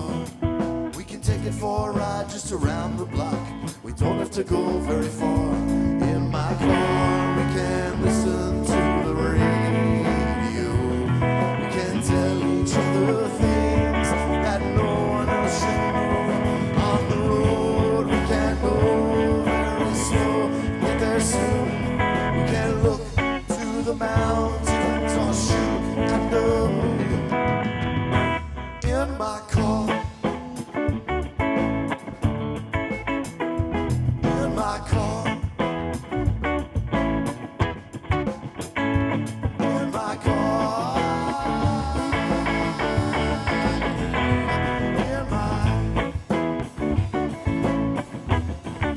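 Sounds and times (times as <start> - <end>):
bass guitar: 0.0 - 48.9
drums: 0.0 - 48.9
electric guitar: 0.0 - 48.9.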